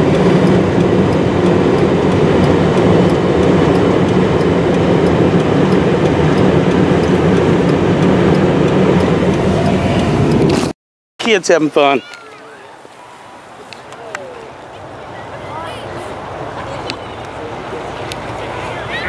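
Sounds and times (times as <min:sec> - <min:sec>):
vehicle engine rumbling: 0:00.0 - 0:10.8.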